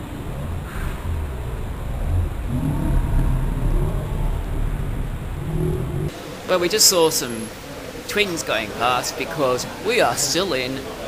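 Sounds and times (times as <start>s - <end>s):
low rumble: 0.0s - 6.2s
vehicle engine: 0.0s - 6.2s.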